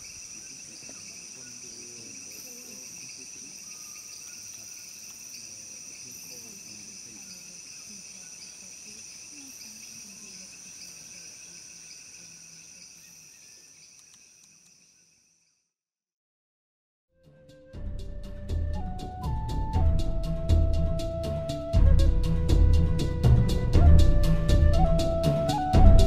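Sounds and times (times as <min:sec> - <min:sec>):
insect chorus buzzing: 0:00.0 - 0:15.6.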